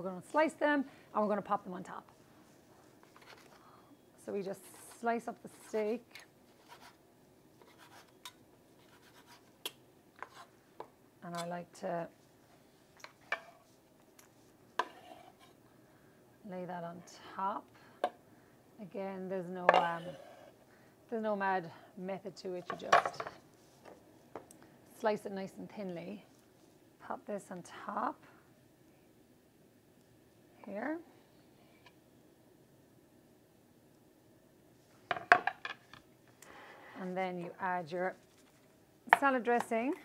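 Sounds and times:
kitchenware knocking and clinking: 35.1s - 35.8s.

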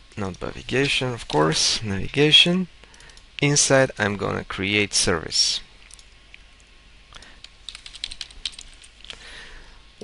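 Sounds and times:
computer keyboard typing: 2.9s - 3.2s, 5.8s - 6.2s, 7.2s - 9.2s.

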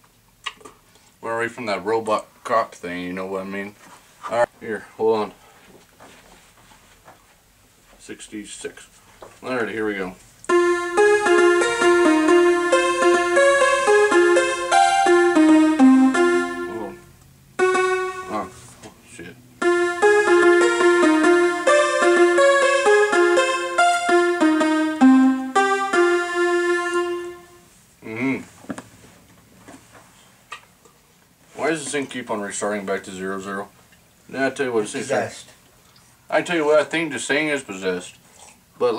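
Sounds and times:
electronic keyboard melody: 10.5s - 18.7s, 19.6s - 27.7s.

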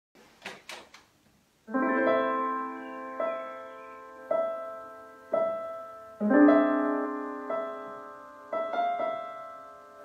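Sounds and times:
electric piano chord: 1.7s - 10.0s.

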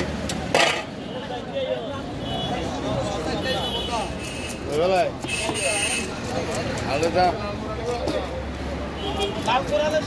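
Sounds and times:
low rumble of street noise: 0.0s - 10.0s.

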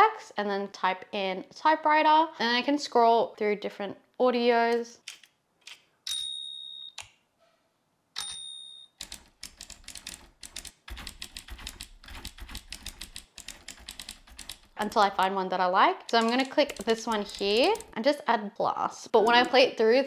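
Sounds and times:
typewriter bell dings: 6.1s - 7.0s, 8.2s - 9.2s
typewriter keystroke clicks: 16.1s - 18.0s.

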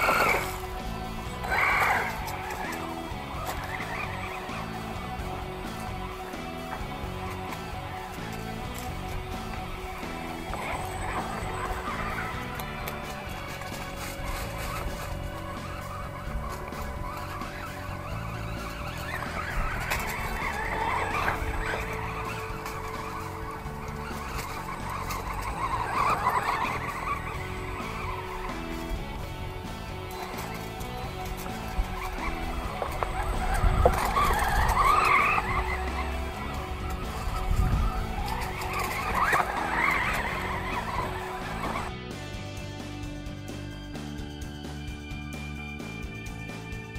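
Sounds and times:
electric motor whining: 0.0s - 42.4s
background music: 0.0s - 46.9s
tyres scrabbling on loose dirt: 0.0s - 46.9s.

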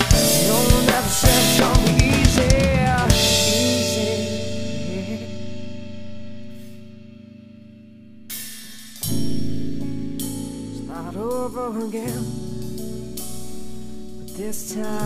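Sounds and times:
drum fill: 0.0s - 5.5s
pop-rock band playing: 0.0s - 7.3s, 8.3s - 15.0s.

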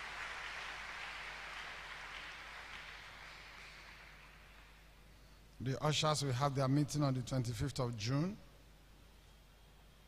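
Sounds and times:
congregation applauding: 0.0s - 4.9s.

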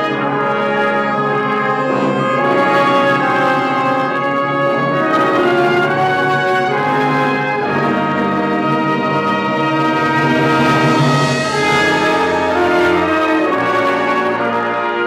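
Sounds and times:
wind band playing held chords: 0.0s - 15.0s.

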